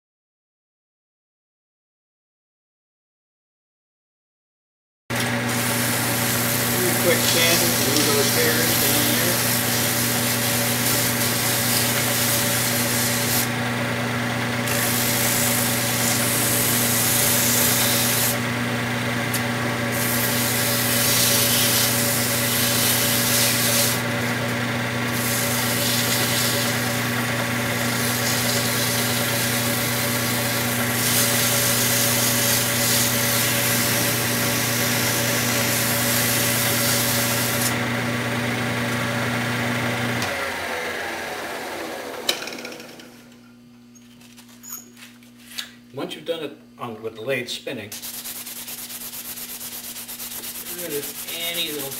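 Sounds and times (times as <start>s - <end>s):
wood lathe motor humming: 5.1s - 43.4s, 48.6s - 51.9s
sandpaper rubbing spinning wood: 5.4s - 13.6s, 14.7s - 18.5s, 19.9s - 24.4s, 25.1s - 37.8s, 47.9s - 51.9s.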